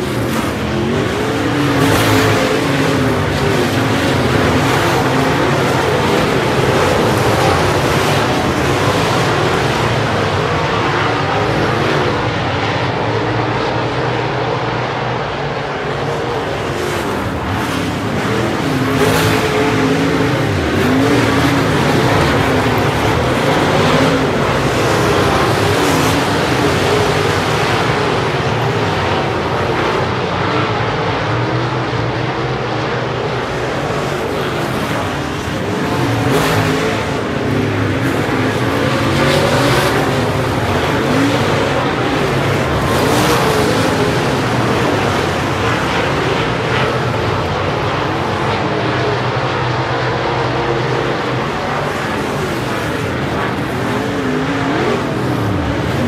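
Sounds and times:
race car engines: 0.0s - 56.0s.

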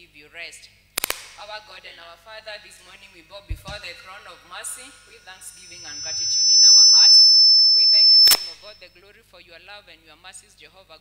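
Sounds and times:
sharp click: 1.0s - 1.6s, 3.5s - 8.7s
microphone feedback squeal: 3.5s - 8.8s.

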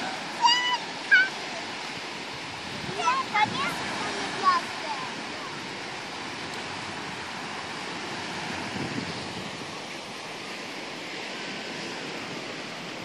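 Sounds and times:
waves breaking on beach: 0.0s - 13.0s
wind buffeting microphone: 0.0s - 13.0s.

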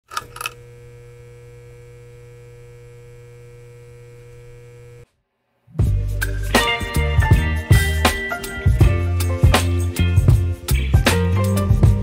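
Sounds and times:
electrical hum: 0.0s - 5.1s
music: 5.7s - 12.0s.

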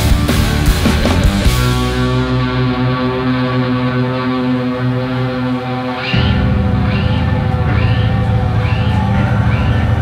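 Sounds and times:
rock band droning chord: 0.0s - 10.0s.

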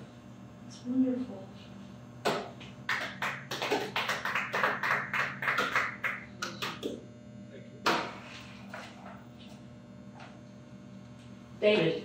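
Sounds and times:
group of people clapping: 2.3s - 7.0s.

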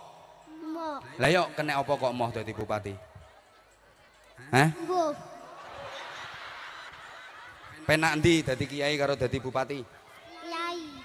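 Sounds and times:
murmur of seated crowd: 0.0s - 11.0s.

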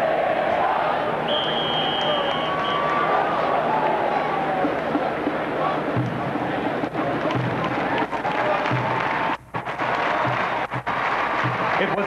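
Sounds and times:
faint music: 0.0s - 12.0s
stadium crowd hubbub: 0.0s - 12.0s.

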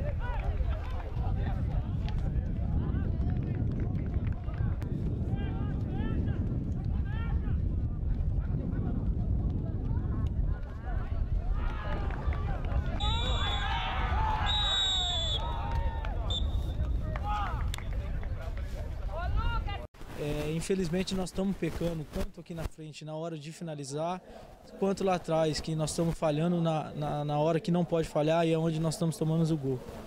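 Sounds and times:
players and spectators shouting: 10.8s - 16.3s
referee whistle blasts: 13.0s - 13.8s, 14.4s - 15.6s, 16.3s - 16.8s.

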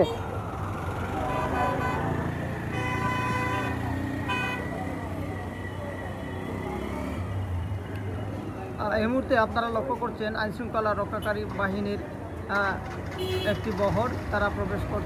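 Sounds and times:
street traffic noise: 0.0s - 15.0s
vehicle horn tooting: 1.3s - 4.7s.

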